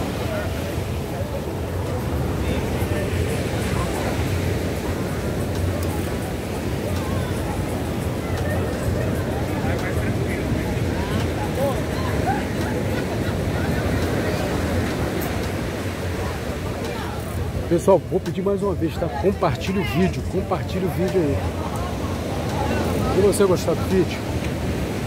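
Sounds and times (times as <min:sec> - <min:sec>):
faint chatter of people: 0:00.0 - 0:25.0.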